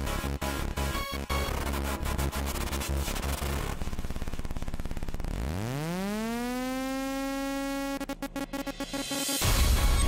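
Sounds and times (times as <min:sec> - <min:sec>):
electronic buzzing rising tone: 0:00.2 - 0:09.6.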